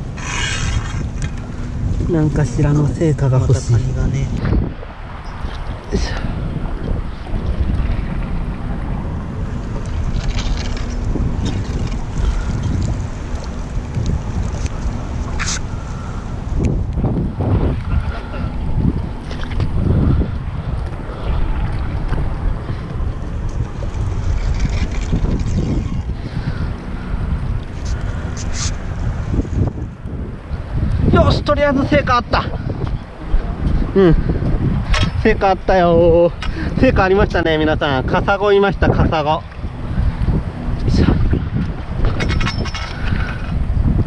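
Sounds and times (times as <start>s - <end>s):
wind buffeting microphone: 0.0s - 44.0s
water sloshing and splashing: 4.5s - 16.3s, 17.5s - 29.2s.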